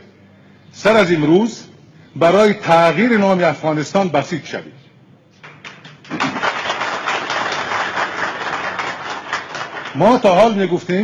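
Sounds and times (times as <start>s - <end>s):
audience applauding: 5.4s - 10.4s.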